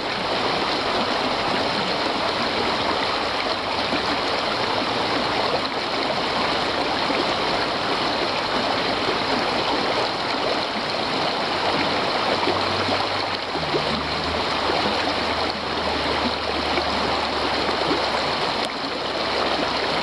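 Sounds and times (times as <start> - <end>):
stream splashing over stones: 0.0 - 20.0.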